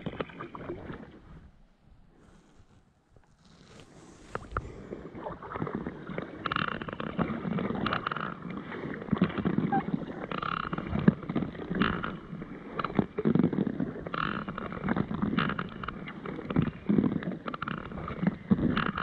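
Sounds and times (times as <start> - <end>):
paddle splashing through water: 3.3 - 19.0.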